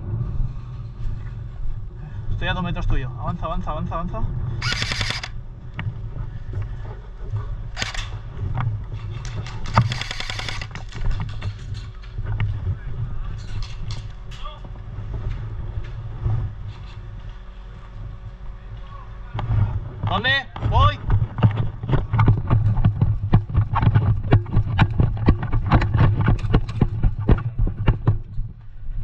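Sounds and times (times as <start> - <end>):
low rumble: 0.0 - 29.0
airsoft guns firing bursts: 4.6 - 5.4, 7.8 - 8.1, 9.5 - 10.8.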